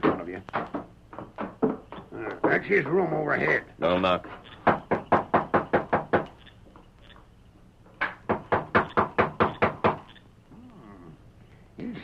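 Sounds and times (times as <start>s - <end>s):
knocking on a door: 0.0s - 2.8s, 4.6s - 6.4s, 8.0s - 10.1s.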